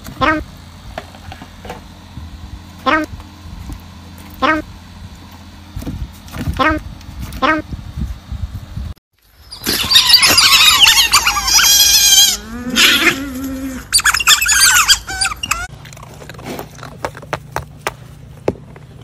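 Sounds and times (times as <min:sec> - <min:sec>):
otters chirping and squealing: 0:09.4 - 0:15.7.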